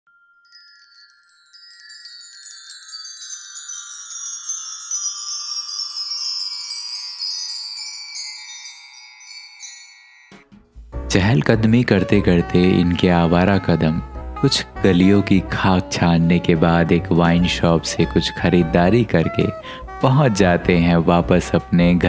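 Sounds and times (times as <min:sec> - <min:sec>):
shimmering chime tones sliding down: 0:00.1 - 0:10.4.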